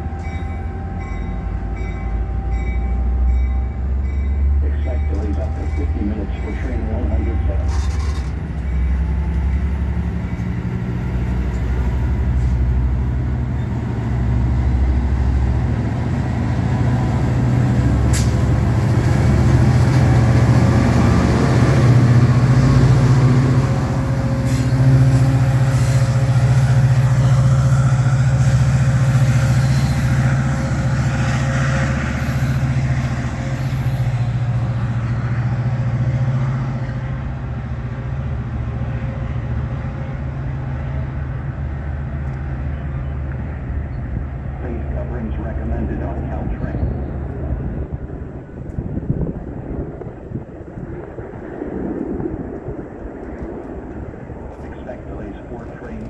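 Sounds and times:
diesel locomotive idling: 0.0s - 48.5s.

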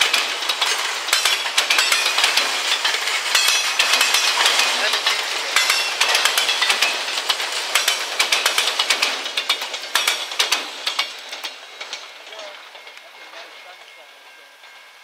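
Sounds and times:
steel wheels hissing on rail: 0.0s - 15.0s
train wheels clicking over rail joints: 0.0s - 15.0s.

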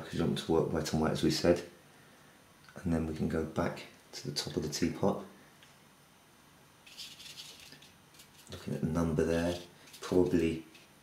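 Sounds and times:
brush rubbing on paper: 6.9s - 8.6s.

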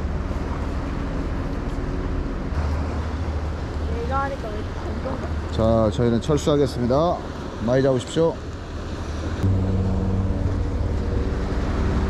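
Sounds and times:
wind rumble on microphone: 8.5s - 12.0s.

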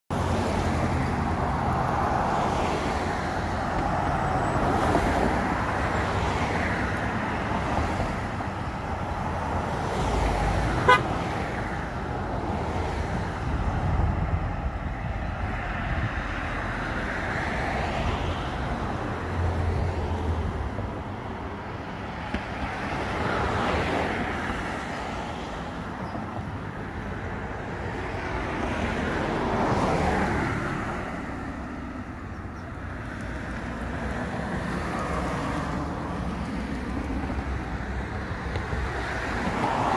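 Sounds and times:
cars passing: 0.1s - 39.9s.

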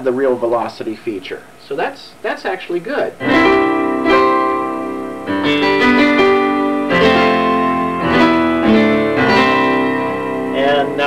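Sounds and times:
synthesizer piano chords: 3.2s - 11.0s.

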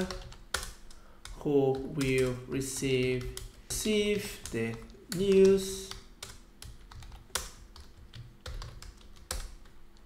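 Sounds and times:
computer keyboard typing: 0.0s - 10.0s.

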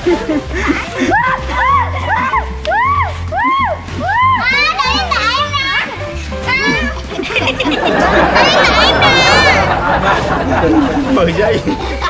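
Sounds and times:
background music with low bass: 0.0s - 12.0s
young children's voices: 4.2s - 7.4s, 8.0s - 9.8s.

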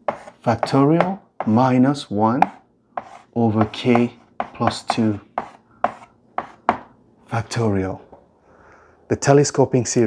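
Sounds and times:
chalk tapping on blackboard: 0.0s - 1.7s, 2.4s - 6.9s.

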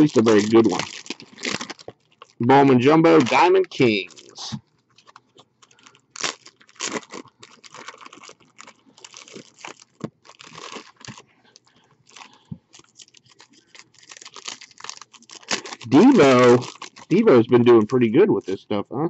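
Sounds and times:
foil pack torn and crinkled: 0.0s - 18.2s
plastic wrapping tearing: 0.0s - 18.5s.

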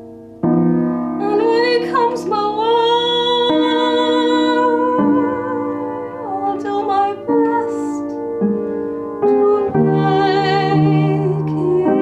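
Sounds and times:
upright piano accompaniment: 0.0s - 12.0s.

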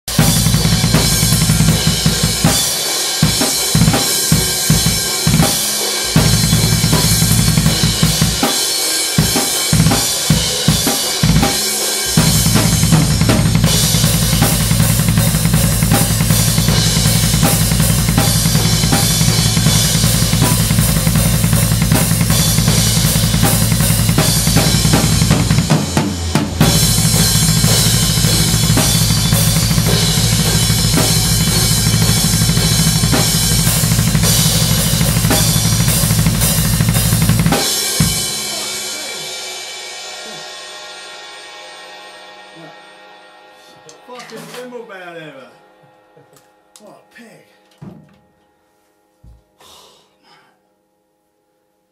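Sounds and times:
bass drum strokes: 0.1s - 8.5s, 9.2s - 41.4s
fast double bass drum: 0.1s - 8.6s, 9.2s - 38.8s
snare and cymbals: 0.1s - 40.5s.

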